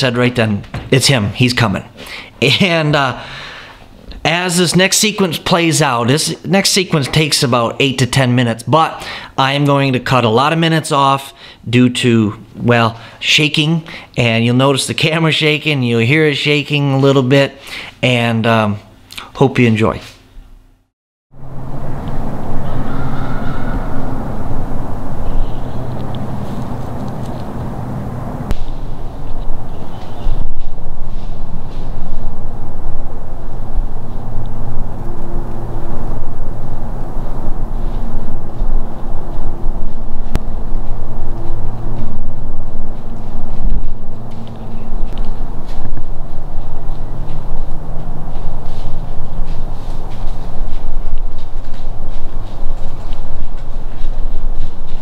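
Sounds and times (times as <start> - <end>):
steady low hum: 0.0 - 19.4, 20.2 - 55.0.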